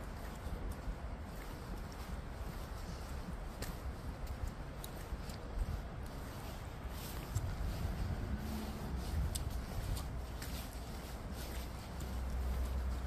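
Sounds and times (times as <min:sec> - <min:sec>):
footsteps on pavement: 0:00.0 - 0:13.0
steady low rumble: 0:00.0 - 0:13.0.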